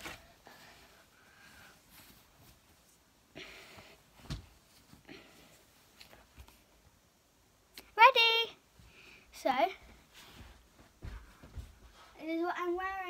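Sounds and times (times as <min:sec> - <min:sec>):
fabric rustling: 0:00.0 - 0:06.8, 0:09.7 - 0:12.5.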